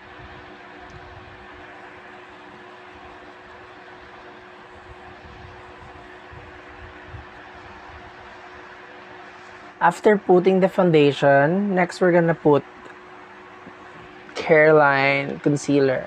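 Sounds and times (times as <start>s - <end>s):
constant low hum: 0.0s - 16.0s.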